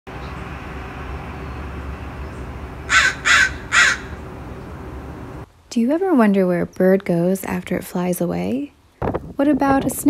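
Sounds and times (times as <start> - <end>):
low outdoor background noise: 0.1 - 10.0
bird calling: 1.3 - 5.3.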